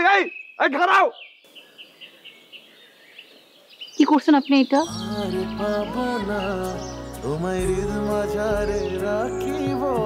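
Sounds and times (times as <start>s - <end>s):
quiet outdoor background noise: 0.0s - 10.0s
small birds chirping: 0.0s - 10.0s.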